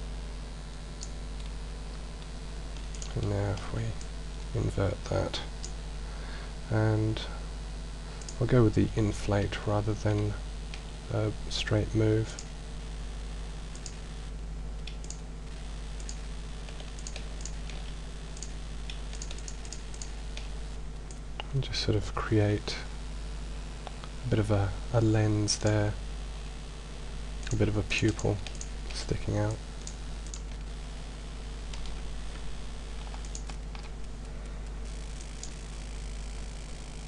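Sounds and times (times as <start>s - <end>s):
low electrical hum: 0.0s - 37.0s
computer clicking: 1.0s - 1.5s, 2.2s - 4.1s, 8.2s - 8.4s, 12.2s - 12.5s, 13.7s - 14.0s, 14.8s - 15.3s, 15.9s - 21.6s, 27.4s - 30.7s, 31.6s - 35.6s.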